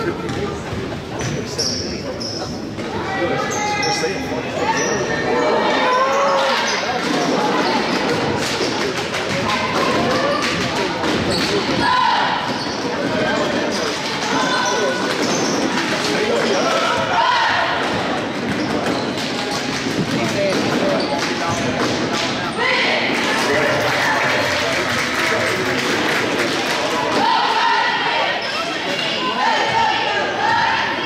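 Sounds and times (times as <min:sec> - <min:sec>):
crowd voices: 0:00.0 - 0:31.0.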